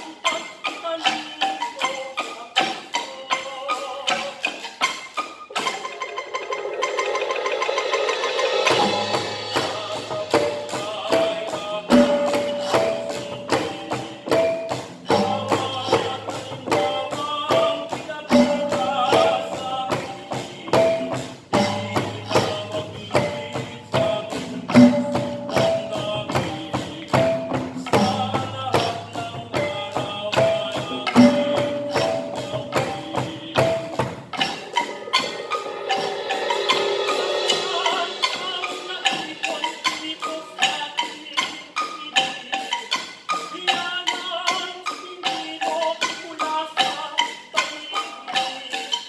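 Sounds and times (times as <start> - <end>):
percussion ensemble fast beat: 0.0 - 49.0
pitched mallet notes: 0.0 - 49.0.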